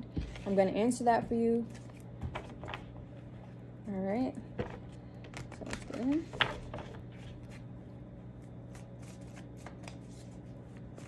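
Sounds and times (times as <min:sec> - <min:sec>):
cards being shuffled: 0:04.6 - 0:07.7, 0:08.6 - 0:11.0.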